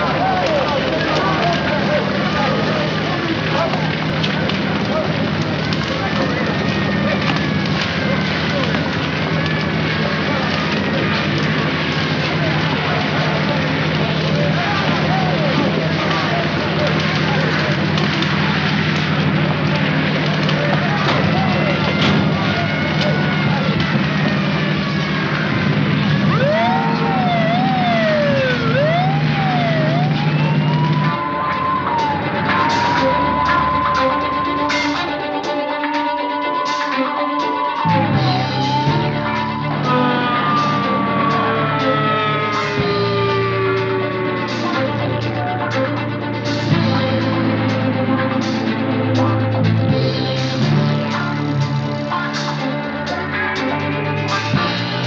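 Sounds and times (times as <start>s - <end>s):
light crackle: 0.0s - 34.1s
low engine rumble: 0.0s - 36.7s, 37.3s - 55.0s
emergency sirens wailing: 0.0s - 55.0s
overlapping voices: 0.0s - 55.0s
loud swooping siren: 24.6s - 47.5s.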